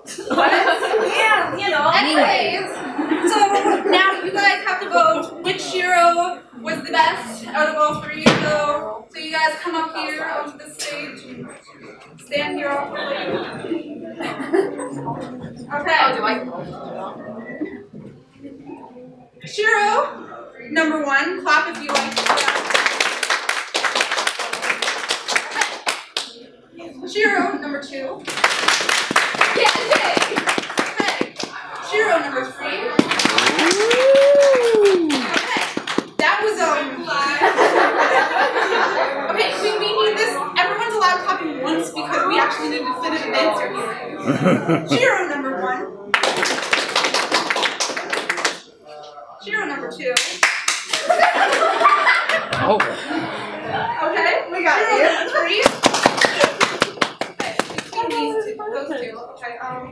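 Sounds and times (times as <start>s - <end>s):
laughter: 0.0s - 1.5s, 2.8s - 4.0s, 14.1s - 15.3s, 37.2s - 39.4s, 44.2s - 45.2s, 51.0s - 54.0s
audience applause: 22.0s - 26.2s, 28.3s - 31.6s, 33.0s - 36.2s, 46.1s - 48.6s, 55.6s - 58.0s.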